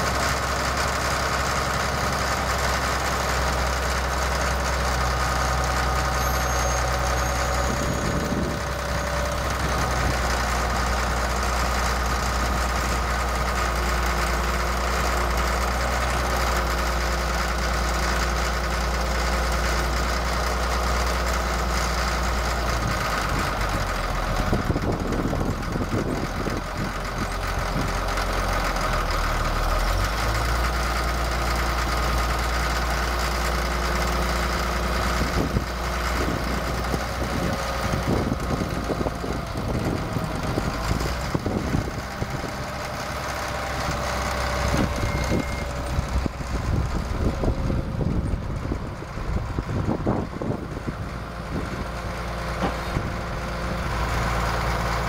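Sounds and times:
diesel engine idling: 0.0 - 55.0.

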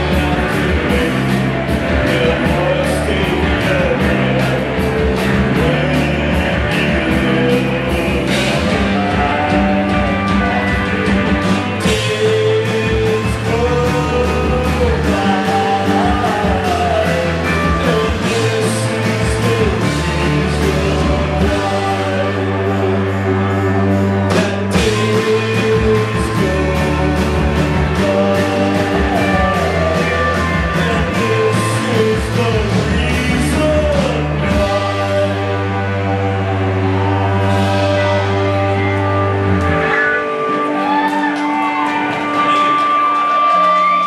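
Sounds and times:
electric guitars: 0.0 - 44.0
steady drum beat: 0.0 - 44.0.

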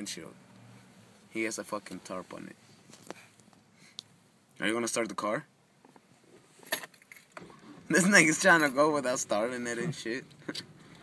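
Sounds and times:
car keys jangling: 6.7 - 7.4.

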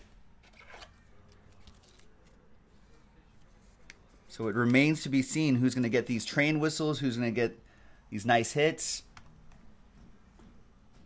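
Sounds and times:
trading cards clicking and rustling: 0.4 - 2.5.

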